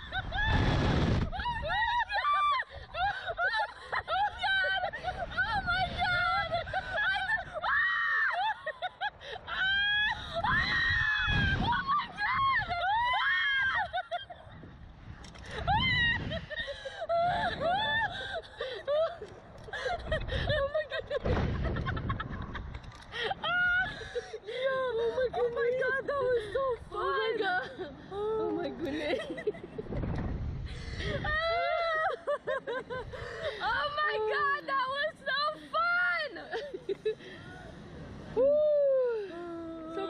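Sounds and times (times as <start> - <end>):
women screaming: 0.0 - 14.4, 15.5 - 19.3, 31.0 - 36.6, 38.4 - 40.0
laughter: 1.7 - 5.6, 6.4 - 9.3, 13.7 - 14.6, 15.5 - 24.4, 28.6 - 30.0, 31.0 - 33.7, 36.3 - 37.4.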